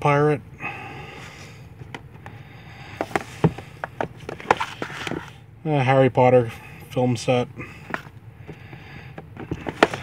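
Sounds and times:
plastic cases clacking together: 0:03.0 - 0:05.4, 0:07.8 - 0:10.0.

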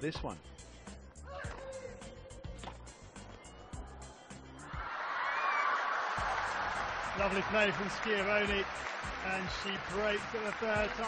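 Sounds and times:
music with steady beat: 0:00.0 - 0:04.8, 0:06.2 - 0:11.0
crowd cheering and applauding: 0:04.0 - 0:11.0.

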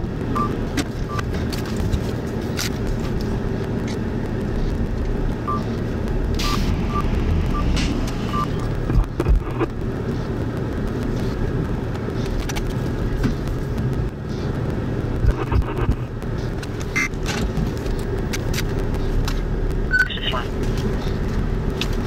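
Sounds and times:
vehicle motor rumbling: 0:00.0 - 0:22.0.

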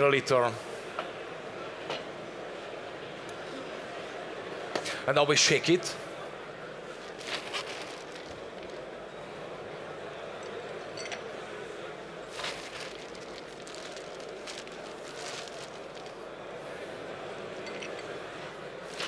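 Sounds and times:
steady room noise: 0:00.0 - 0:19.0.

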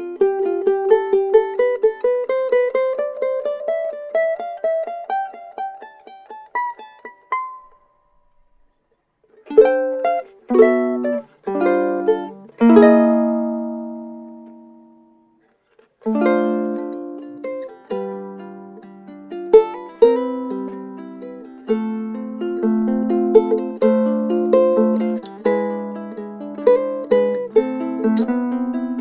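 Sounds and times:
ukulele playing: 0:00.0 - 0:29.0.

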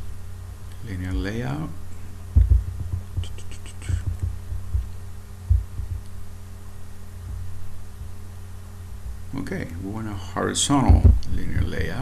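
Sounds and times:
low electrical hum: 0:00.0 - 0:12.0
dull low thumps: 0:02.2 - 0:06.1, 0:07.2 - 0:08.2, 0:08.9 - 0:09.4, 0:10.9 - 0:11.8.

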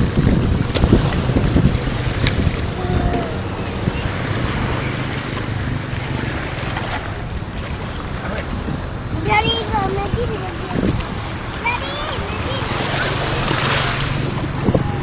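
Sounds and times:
sea surf rushing: 0:00.0 - 0:15.0
wind buffeting microphone: 0:00.0 - 0:15.0.

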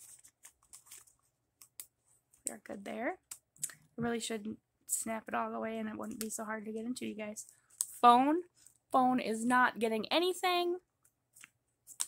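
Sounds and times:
plastic envelope rustling: 0:00.0 - 0:02.5.

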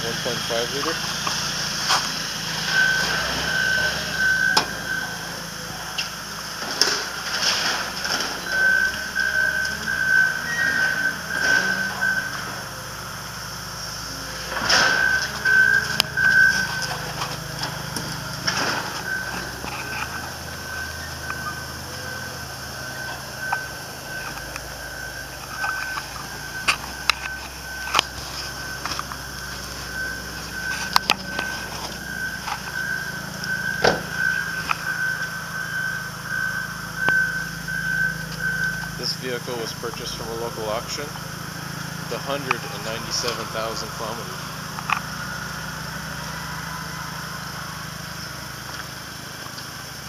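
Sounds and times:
low engine hum: 0:00.0 - 0:50.0
vehicle reversing alarm beeping: 0:00.0 - 0:50.0.

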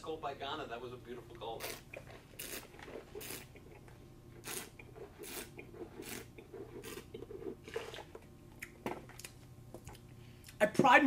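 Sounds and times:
soft hissing slurps of wine: 0:01.6 - 0:03.6, 0:04.4 - 0:08.1.

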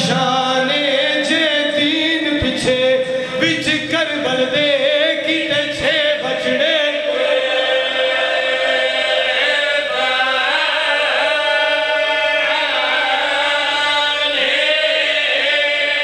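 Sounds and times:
men chanting a lament: 0:00.0 - 0:16.0.

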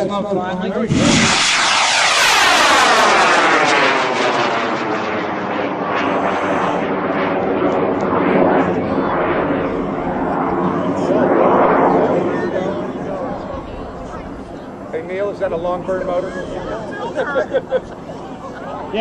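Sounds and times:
rocket motor roaring: 0:00.9 - 0:13.3.

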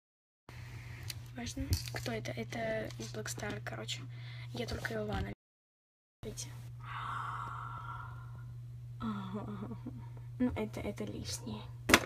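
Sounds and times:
low hum: 0:06.2 - 0:11.9
person sighing: 0:06.8 - 0:10.1.

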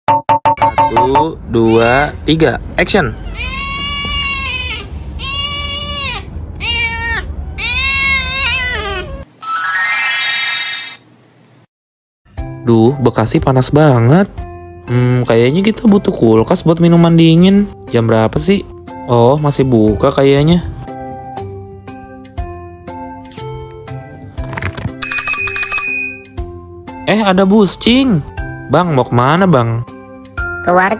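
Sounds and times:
background music: 0:12.3 - 0:30.9
small bell ringing rapidly: 0:25.0 - 0:26.3.

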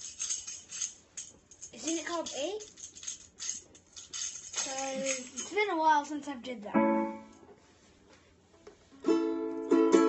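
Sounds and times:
light jingles: 0:00.0 - 0:06.4
person speaking: 0:04.6 - 0:07.2.

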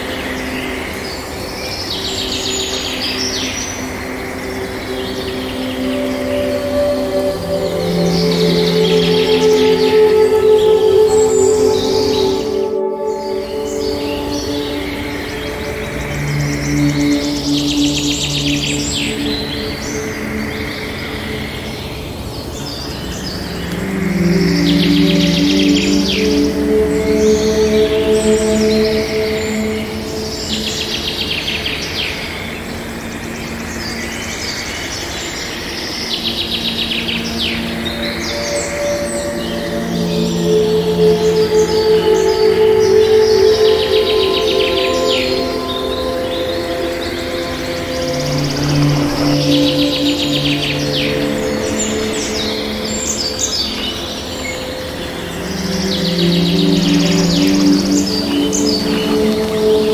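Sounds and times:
calm background music: 0:00.0 - 0:59.9
songbirds chirping and trilling: 0:00.0 - 0:59.9.

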